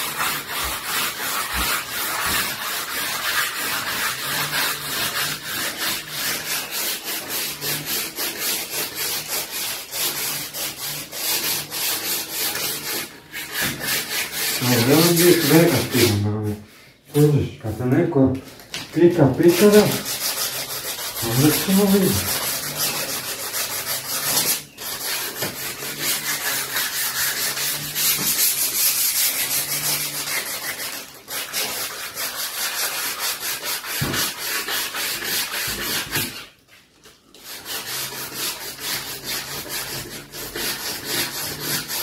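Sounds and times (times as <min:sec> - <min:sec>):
sandpaper sanding wood: 0:00.0 - 0:18.2, 0:18.9 - 0:42.0.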